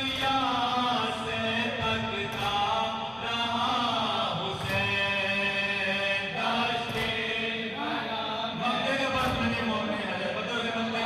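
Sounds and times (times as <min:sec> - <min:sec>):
men chanting a lament through a pa: 0:00.0 - 0:11.0.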